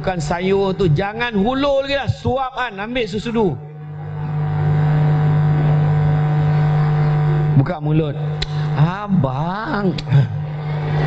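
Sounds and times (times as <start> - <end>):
man humming low note: 3.6 - 9.1.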